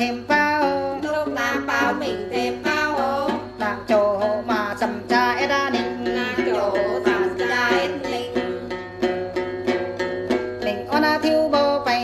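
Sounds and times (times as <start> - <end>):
person singing: 0.0 - 9.5, 10.4 - 12.0
plucked long-necked lute: 0.0 - 12.0.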